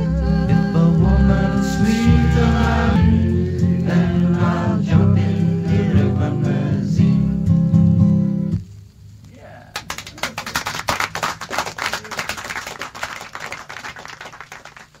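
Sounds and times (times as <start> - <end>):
folk song with acoustic guitar: 0.0 - 8.6.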